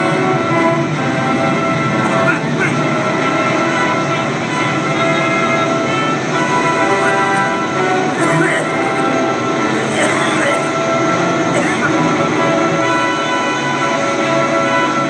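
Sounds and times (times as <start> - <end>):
film soundtrack sustained chord: 0.0 - 15.0.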